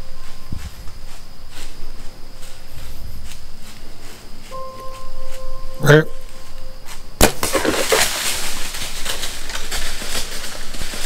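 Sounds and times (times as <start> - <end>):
bow shot crack: 7.2 - 8.6
animal crashing through dry leaves: 7.2 - 11.0.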